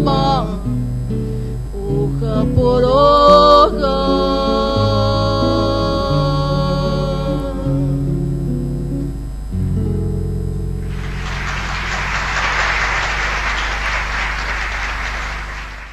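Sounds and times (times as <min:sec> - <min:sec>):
acoustic guitar folk song: 0:00.0 - 0:12.2
applause: 0:10.8 - 0:15.9.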